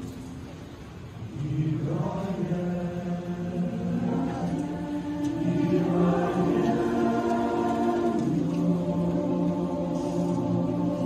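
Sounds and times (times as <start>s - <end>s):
mixed choir singing: 1.1s - 11.0s.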